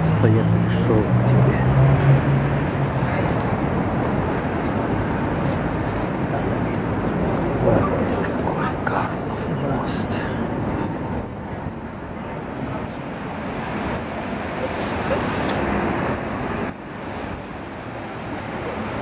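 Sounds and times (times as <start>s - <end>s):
loud steady rushing noise: 0.0s - 19.0s
crowd murmur: 2.8s - 16.7s.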